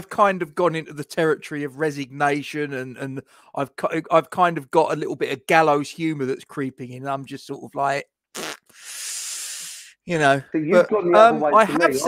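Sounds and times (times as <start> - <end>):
short breath puff: 8.4 - 10.0.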